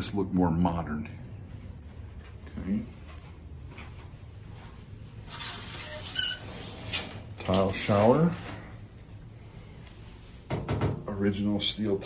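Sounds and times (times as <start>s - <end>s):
curtain rings scraping on rod: 5.2s - 7.2s.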